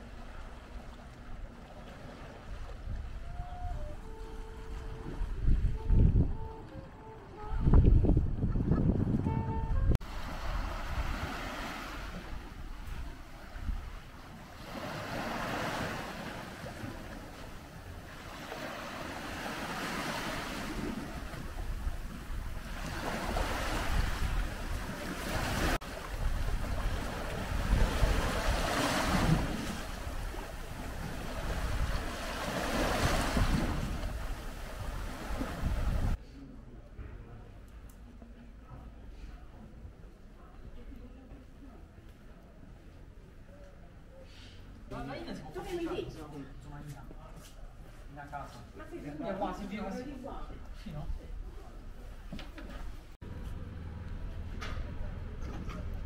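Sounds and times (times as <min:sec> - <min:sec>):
wind rumbling on microphone: 0:02.3 - 0:14.3, 0:20.4 - 0:36.2
sea waves washing onto shore: 0:10.0 - 0:36.2.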